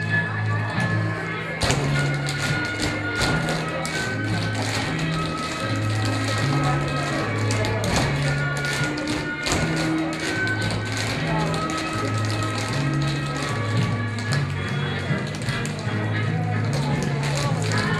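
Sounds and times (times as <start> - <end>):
music with steady bass line: 0.0 - 17.9
tap shoes on hard floor: 1.6 - 14.6.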